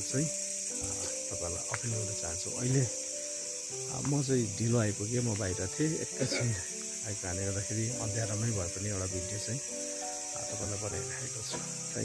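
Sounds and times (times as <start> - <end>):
insect chorus drone: 0.0 - 12.0.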